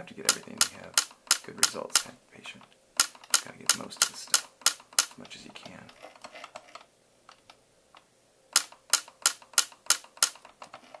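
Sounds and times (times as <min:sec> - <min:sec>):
laser sharp clicks: 0:00.2 - 0:02.1, 0:03.0 - 0:05.2, 0:08.5 - 0:10.4.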